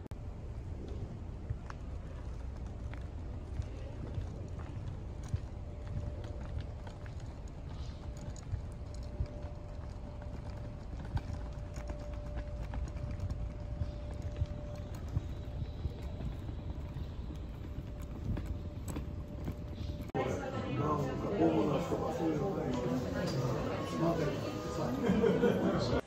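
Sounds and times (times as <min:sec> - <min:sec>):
faint steady hum: 0:00.0 - 0:26.0
wind rumble on microphone: 0:00.2 - 0:20.2
light footsteps: 0:00.4 - 0:25.3.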